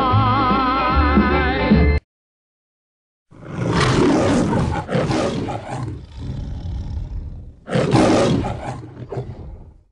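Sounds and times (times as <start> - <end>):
cat growling: 3.4 - 9.8.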